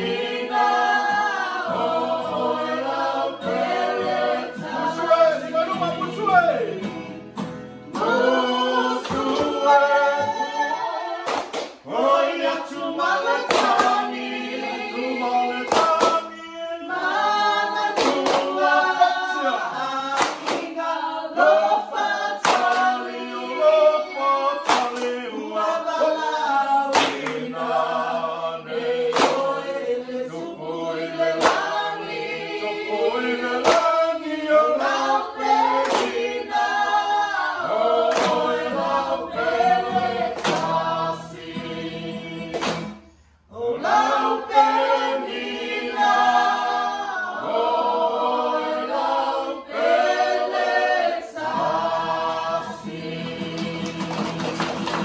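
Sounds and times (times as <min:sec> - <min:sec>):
group singing unaccompanied: 0:00.0 - 0:55.0
sharp hand claps: 0:09.0 - 0:09.7, 0:11.2 - 0:11.9, 0:13.4 - 0:14.2, 0:15.7 - 0:16.3, 0:17.8 - 0:18.6, 0:20.1 - 0:20.8, 0:22.4 - 0:23.0, 0:24.6 - 0:25.2, 0:26.9 - 0:27.5, 0:29.1 - 0:29.6, 0:31.3 - 0:31.9, 0:33.6 - 0:34.1, 0:35.6 - 0:36.5, 0:38.1 - 0:38.6, 0:40.2 - 0:40.9, 0:42.4 - 0:43.2, 0:53.2 - 0:55.0.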